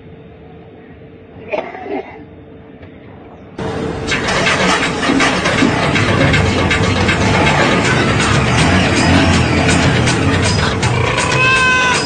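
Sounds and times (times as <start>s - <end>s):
auto-rickshaw engine clattering: 3.6s - 12.0s.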